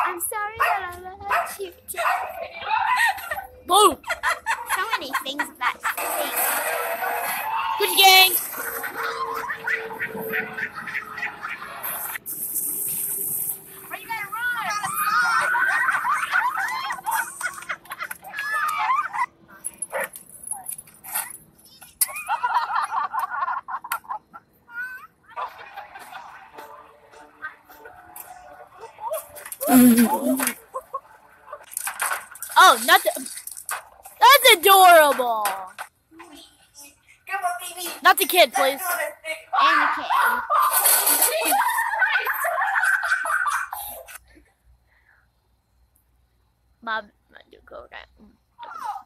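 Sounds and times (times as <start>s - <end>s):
high excited voices: 0.0s - 6.4s, 7.2s - 12.0s, 13.9s - 19.4s, 28.9s - 31.0s, 32.6s - 33.3s, 34.2s - 35.7s, 36.8s - 44.0s
mixed chatter: 0.0s - 12.3s
high-pitched person yelling: 3.7s - 4.0s, 7.8s - 8.4s, 32.6s - 33.2s, 34.2s - 35.6s, 38.0s - 38.8s
outdoor noise hiss: 10.8s - 49.0s.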